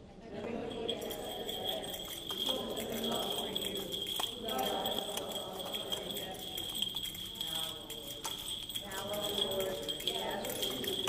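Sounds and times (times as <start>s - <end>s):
person chanting: 0.3s - 11.0s
small bells ringing: 0.6s - 11.0s
chains clinking: 0.7s - 11.0s.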